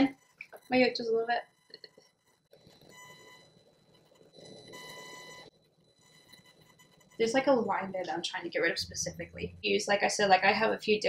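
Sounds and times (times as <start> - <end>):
high-pitched microphone buzz: 7.2 - 10.5.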